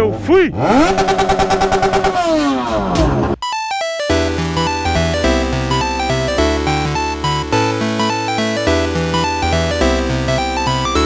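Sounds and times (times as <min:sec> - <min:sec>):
motorcycle engine revving: 0:00.0 - 0:03.4.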